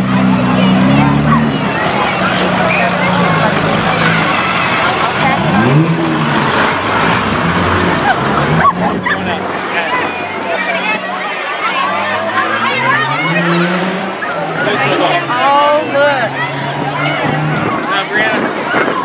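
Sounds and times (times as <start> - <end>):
truck engine running: 0.0 - 11.5
crowd chattering: 0.0 - 19.0.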